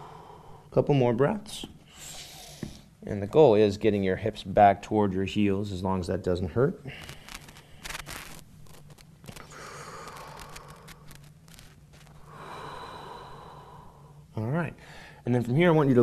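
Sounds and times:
man breathing slowly: 0.0 - 0.7, 9.3 - 15.2
steady low hum: 0.0 - 16.0.

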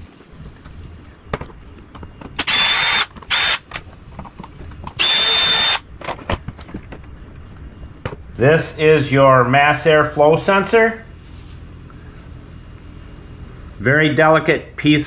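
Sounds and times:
cordless drill motor whine: 2.4 - 3.8, 4.8 - 5.9.

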